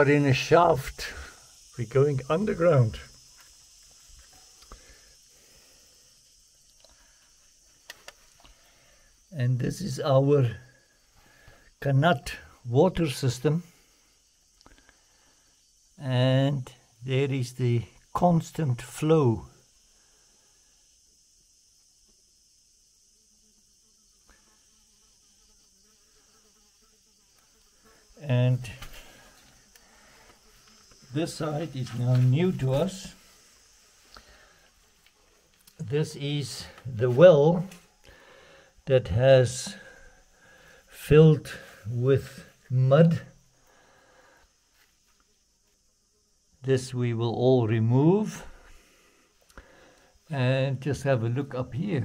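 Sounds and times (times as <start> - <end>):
low steady hiss: 0.0 - 52.0.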